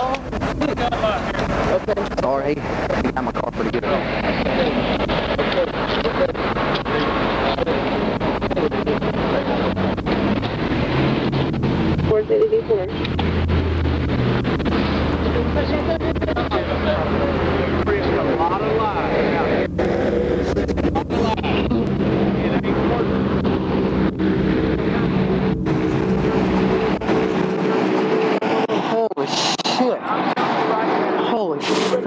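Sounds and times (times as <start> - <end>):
faint voices: 0.0 - 13.6, 14.4 - 32.0
vehicle engines idling: 0.0 - 32.0.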